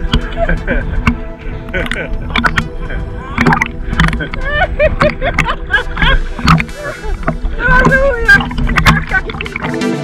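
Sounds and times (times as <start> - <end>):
water sloshing and slapping: 0.0 - 10.0
woman's voice: 6.8 - 9.5.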